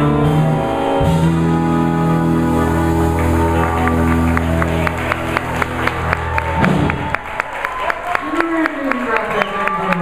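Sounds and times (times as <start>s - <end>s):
blues band closing chord: 0.0s - 7.1s
audience clapping: 2.7s - 10.0s.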